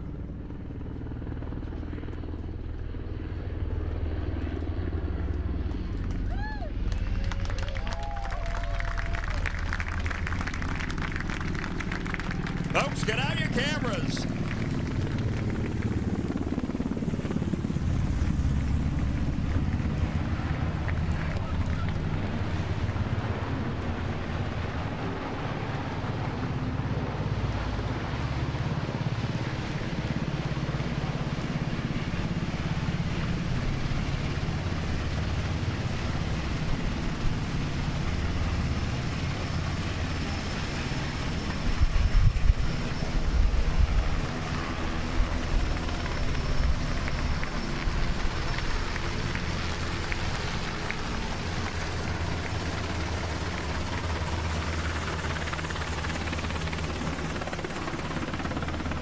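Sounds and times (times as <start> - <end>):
helicopter rotor and turbine noise: 0.0 - 59.0
wind buffeting on microphone: 41.6 - 44.2.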